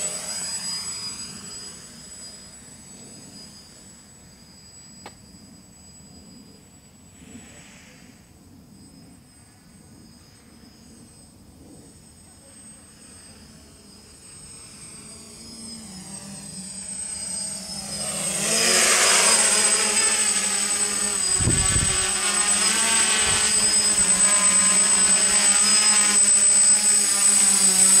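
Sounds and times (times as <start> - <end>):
drone propellers buzzing: 0.0 - 28.0.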